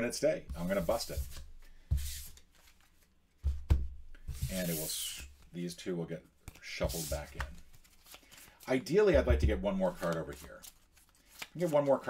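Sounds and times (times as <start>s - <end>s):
playing cards rustling and sliding: 0.6s - 3.6s, 4.2s - 5.5s, 6.4s - 9.0s, 9.8s - 12.0s.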